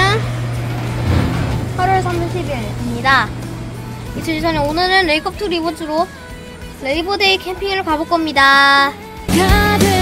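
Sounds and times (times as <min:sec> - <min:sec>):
handheld fan motor hum: 0:00.0 - 0:07.8.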